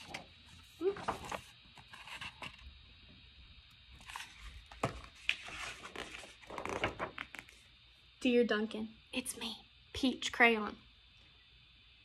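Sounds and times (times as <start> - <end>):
book pages turning: 0.0 - 2.6, 4.0 - 7.6.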